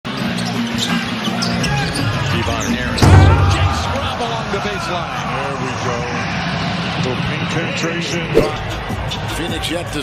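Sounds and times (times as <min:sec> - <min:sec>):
arena music and crowd hum: 0:00.1 - 0:10.0.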